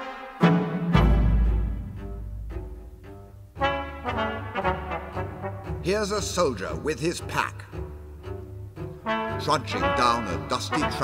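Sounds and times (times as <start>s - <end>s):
brass chamber ensemble march: 0.0s - 2.9s, 3.5s - 11.0s.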